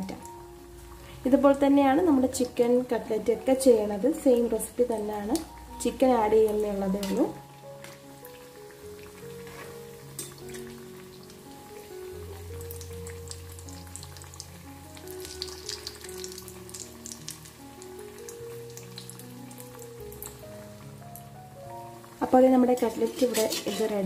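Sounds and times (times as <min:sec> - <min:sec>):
soft background music: 0:00.0 - 0:24.0
oil crackling and popping: 0:06.4 - 0:24.0.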